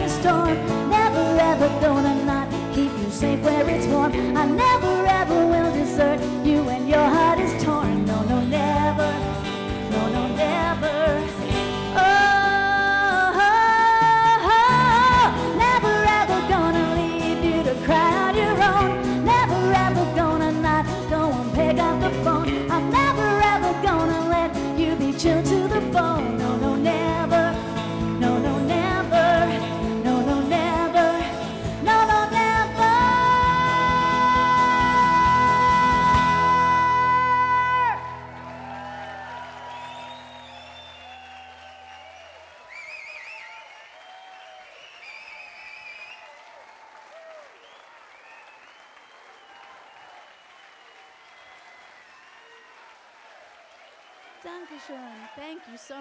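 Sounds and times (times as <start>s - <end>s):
live band playing country-pop: 0.0s - 39.3s
audience applause: 37.1s - 56.0s
scattered cheers: 37.3s - 56.0s.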